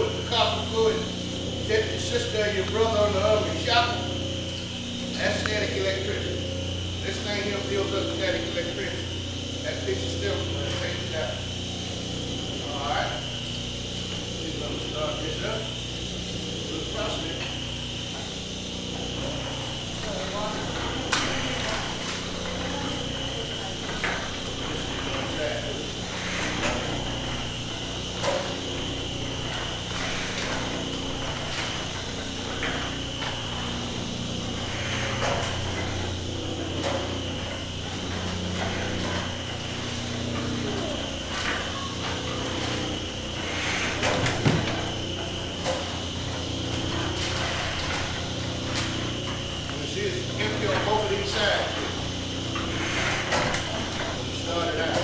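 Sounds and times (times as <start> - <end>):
printing press mechanical drone: 0.0 - 55.0.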